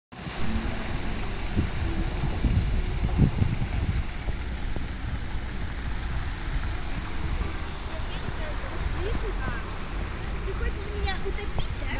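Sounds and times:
street noise: 0:00.1 - 0:11.9
car tyres splashing through water: 0:00.2 - 0:11.9.

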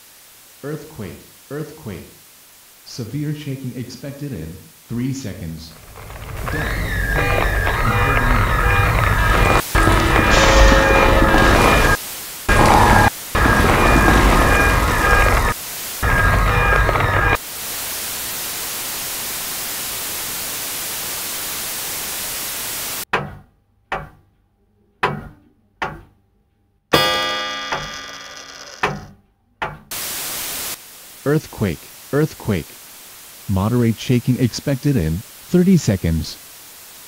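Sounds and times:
static hiss: 0:00.0 - 0:23.1, 0:29.9 - 0:37.0
dense rumble with steady tones: 0:05.3 - 0:17.4.

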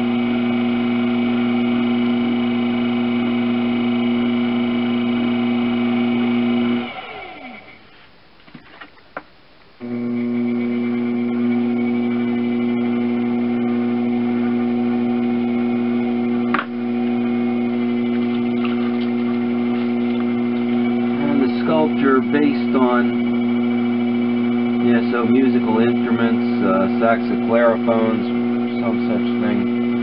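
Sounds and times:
potter's wheel motor hum: 0:00.0 - 0:07.9, 0:09.8 - 0:30.0.

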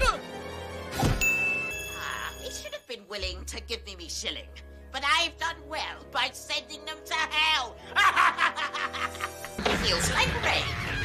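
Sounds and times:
background music: 0:00.0 - 0:11.0
cackling laugh: 0:07.9 - 0:10.1.

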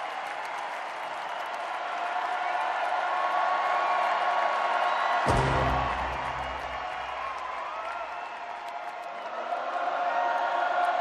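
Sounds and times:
crowd noise: 0:00.0 - 0:11.0
deep bass note: 0:05.3 - 0:07.0.

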